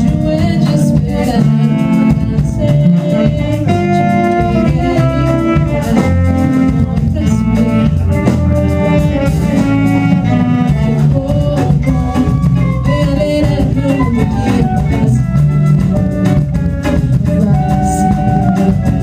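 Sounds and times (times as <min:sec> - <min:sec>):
drums keeping time: 0:00.0 - 0:19.0
held horn chords: 0:00.0 - 0:19.0
walking bass line: 0:00.0 - 0:19.0.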